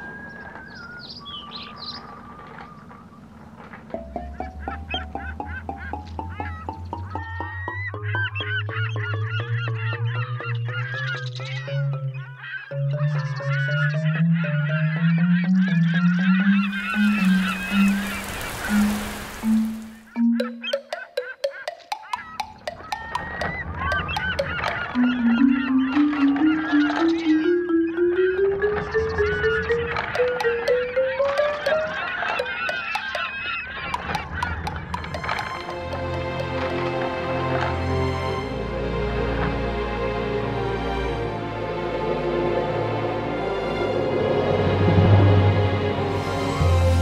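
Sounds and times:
chatter of wavering calls: 0.0s - 37.0s
poultry squawking and honking: 1.0s - 20.2s, 22.2s - 38.6s
music with held notes: 3.6s - 47.0s
rain hiss: 16.8s - 20.1s.

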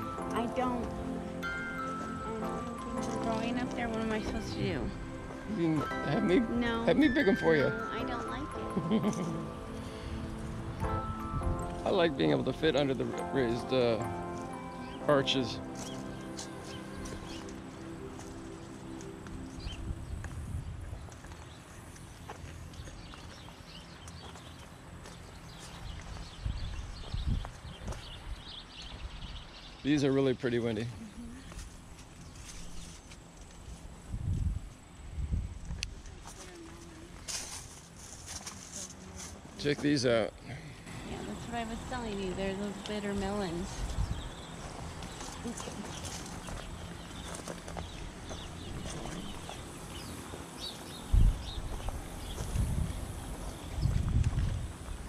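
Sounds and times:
steady low rumble: 0.0s - 14.9s, 15.6s - 24.1s, 40.3s - 55.0s
footsteps on garden path: 0.0s - 29.8s, 30.8s - 34.9s, 35.5s - 55.0s
wind buffeting microphone: 19.6s - 21.2s, 25.8s - 29.6s, 34.0s - 36.2s, 41.2s - 50.1s, 51.0s - 55.0s.

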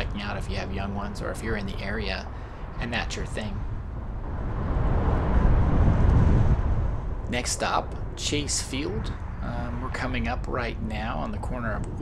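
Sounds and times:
car road and wind noise: 0.0s - 12.0s.

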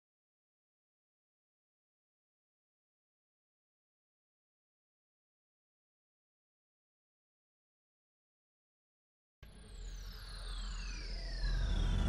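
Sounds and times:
high whistling tones gliding downward: 9.6s - 12.0s
deep rumble: 11.1s - 12.0s.

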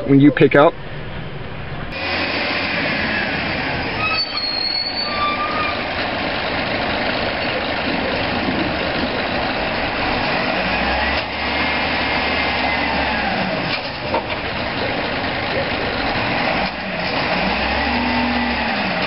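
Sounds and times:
garbage truck running: 1.0s - 19.0s
short high squeal: 3.9s - 5.9s
deep engine hum: 5.8s - 19.0s.

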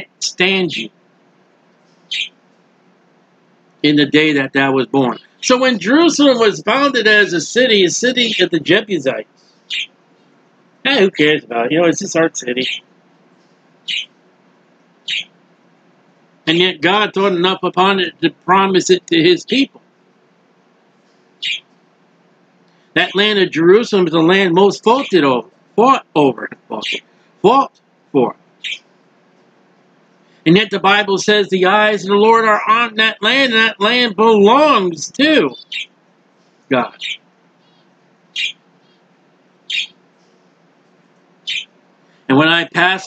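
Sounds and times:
bird chirping: 0.0s - 0.9s, 1.8s - 2.4s, 5.0s - 10.0s, 12.4s - 14.2s, 15.0s - 15.4s, 21.0s - 21.7s, 24.2s - 27.7s, 28.6s - 29.0s, 32.2s - 40.4s, 41.4s - 41.8s.

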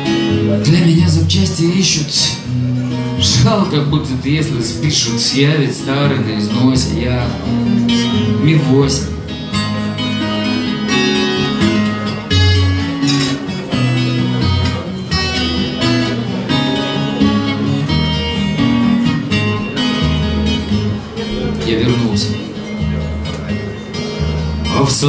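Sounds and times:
acoustic guitar strumming chords: 0.0s - 25.0s.

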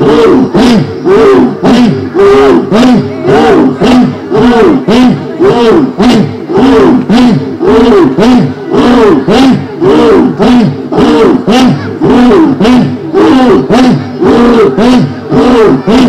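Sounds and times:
men chanting through pa system: 0.0s - 16.0s.

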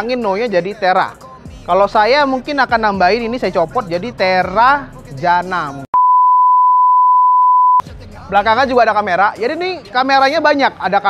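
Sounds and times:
steady test tone beep: 6.0s - 7.8s.

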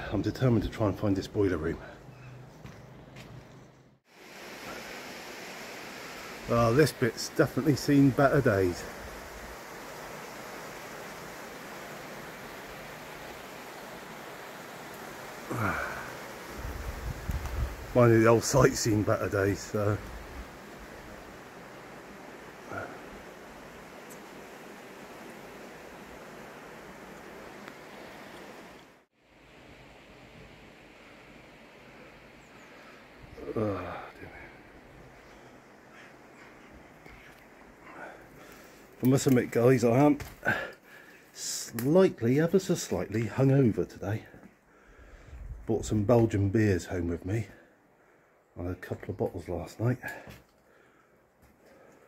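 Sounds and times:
outdoor ambient hiss: 0.0s - 52.0s.

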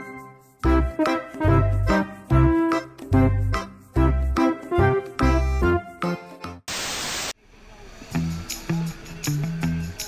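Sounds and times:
music with steady beat: 0.0s - 6.6s
static-like hiss burst: 6.7s - 7.4s.

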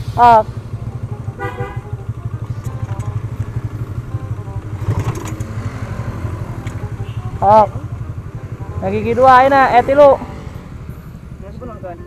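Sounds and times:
motorcycle engine running: 0.0s - 12.0s
clatter of clicks: 5.0s - 5.5s.

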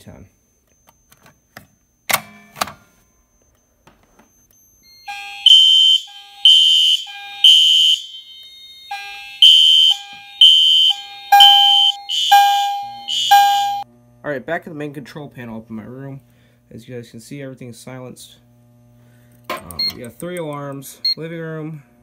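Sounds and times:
fire alarm horn blasts: 5.0s - 13.9s.

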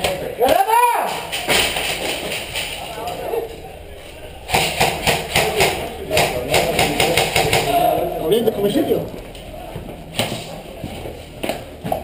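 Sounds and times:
rapid rifle fire: 4.5s - 7.8s.

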